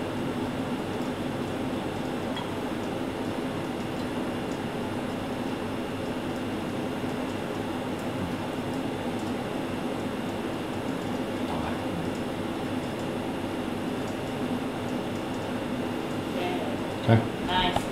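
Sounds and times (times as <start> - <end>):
mechanical hum: 0.0 - 17.9.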